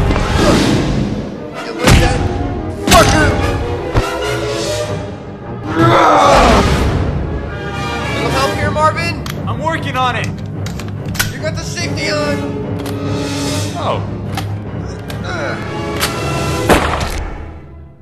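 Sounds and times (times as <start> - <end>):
action film music: 0.0 - 18.0
yells and grunts: 5.6 - 7.1
loud gunshot: 16.6 - 17.4.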